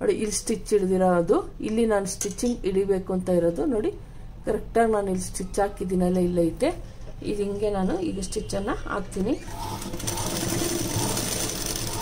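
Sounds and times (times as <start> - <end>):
sewing machine stitching: 9.4 - 12.0.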